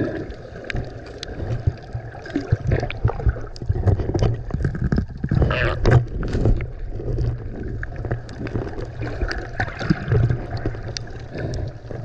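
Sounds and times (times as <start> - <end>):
muffled underwater rumble: 0.0 - 12.0
sharp underwater clicks and crackles: 0.0 - 12.0.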